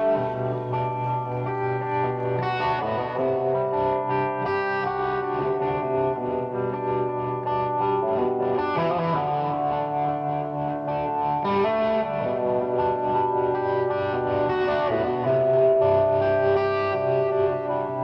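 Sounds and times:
overdriven electric guitar: 0:00.0 - 0:18.0.

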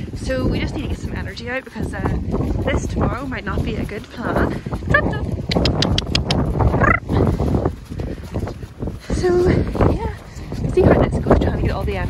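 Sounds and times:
wind buffeting microphone: 0:00.0 - 0:12.0
sharp clicks: 0:05.5 - 0:06.5.

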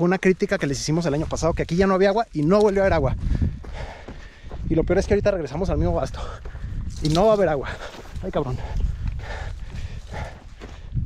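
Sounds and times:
footsteps on dirt trail: 0:00.1 - 0:11.0.

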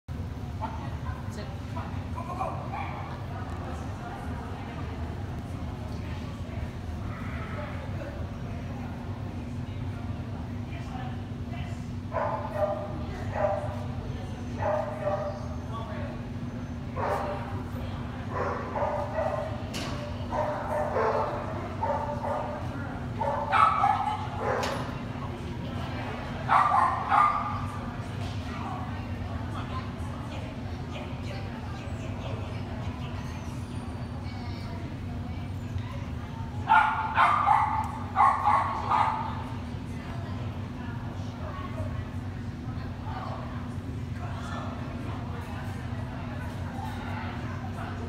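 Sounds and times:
low hum of indoor hall: 0:00.1 - 0:48.0.

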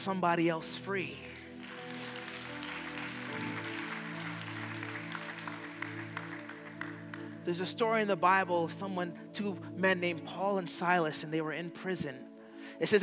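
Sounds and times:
soft sustained music chords: 0:00.0 - 0:13.0
audience applauding: 0:01.3 - 0:07.5.

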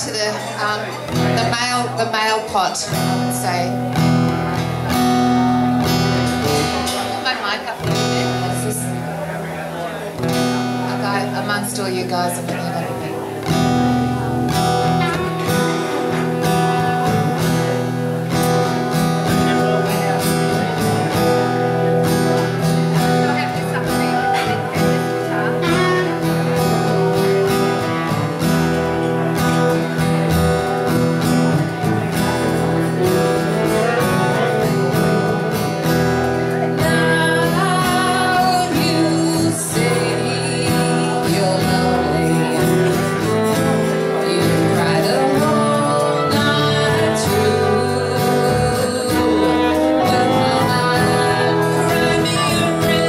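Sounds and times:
live band playing: 0:00.0 - 0:53.0
strummed acoustic guitar: 0:00.0 - 0:53.0.

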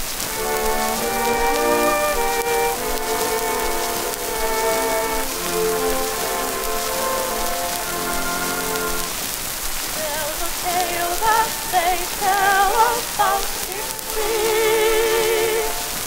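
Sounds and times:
orchestra sustained notes: 0:00.0 - 0:09.3, 0:10.0 - 0:16.0
record surface hiss and crackle: 0:00.0 - 0:16.0
female vocal trio singing: 0:10.0 - 0:16.0.

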